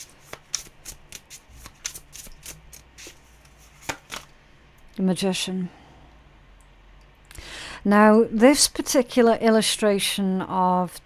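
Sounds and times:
cards being shuffled: 0.0s - 4.3s.

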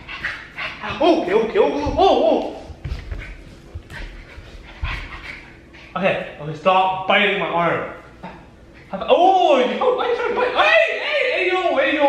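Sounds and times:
puppy panting: 0.0s - 2.0s, 2.8s - 6.4s.

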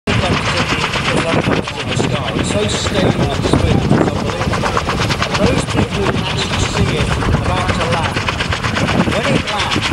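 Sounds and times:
helicopter rotors chopping: 0.1s - 9.9s.

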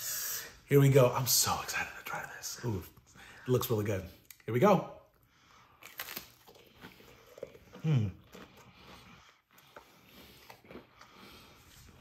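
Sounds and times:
crunching and chewing chip: 5.7s - 12.0s.

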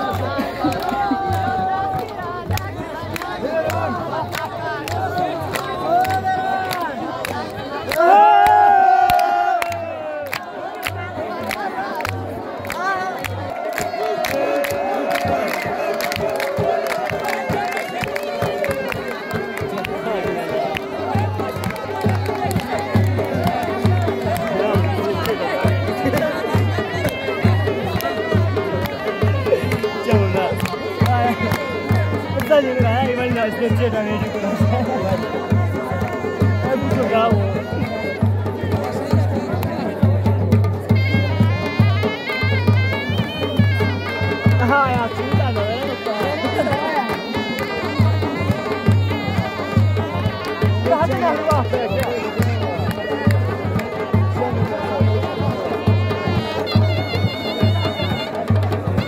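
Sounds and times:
dhol drum dance music: 0.0s - 59.0s
large crowd noise: 0.0s - 59.0s
people clapping: 0.0s - 59.0s
people shouting: 7.8s - 10.7s, 12.9s - 22.1s.

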